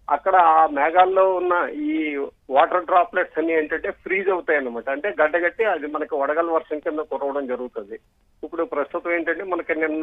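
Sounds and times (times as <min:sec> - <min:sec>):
man talking over phone line: 0:00.1 - 0:10.0.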